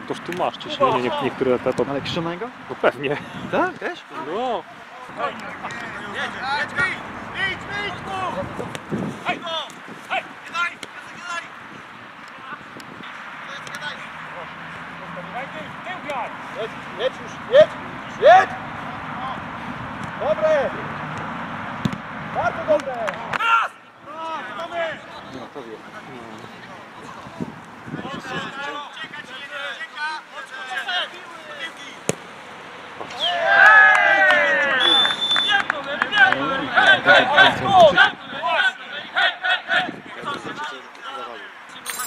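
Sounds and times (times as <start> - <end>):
players calling and shouting: 0.0 - 42.0.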